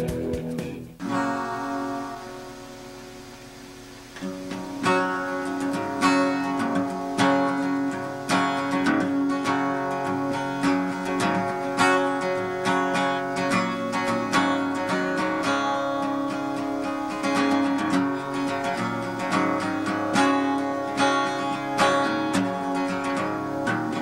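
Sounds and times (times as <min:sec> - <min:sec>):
acoustic guitar strumming: 0:00.0 - 0:24.0
music: 0:00.0 - 0:24.0.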